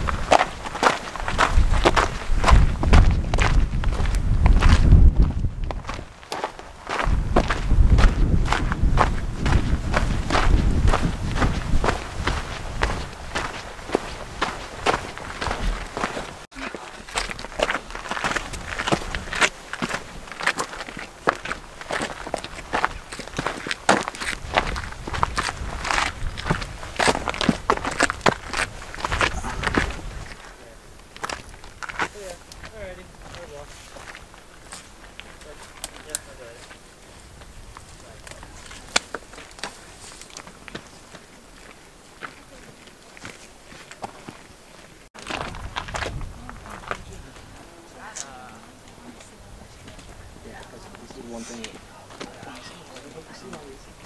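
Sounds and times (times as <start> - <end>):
footsteps crunching on gravel: 0.0 - 54.0.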